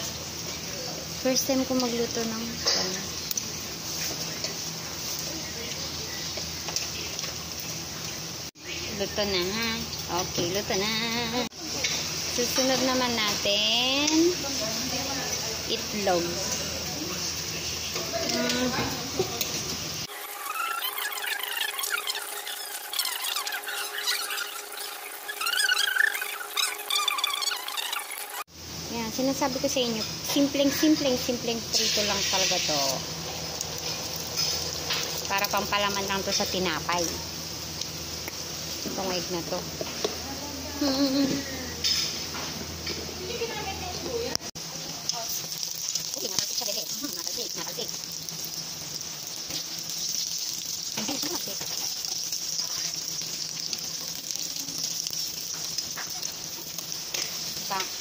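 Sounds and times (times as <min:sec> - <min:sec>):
egg sizzling in hot oil: 0:00.0 - 0:42.6, 0:43.2 - 0:58.0
sped-up squeaky chattering: 0:20.1 - 0:28.4.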